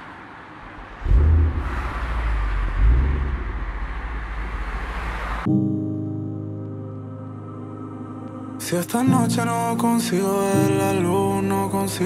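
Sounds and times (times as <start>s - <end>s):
road noise rushing: 0.0s - 5.6s
car engine revving: 0.6s - 5.5s.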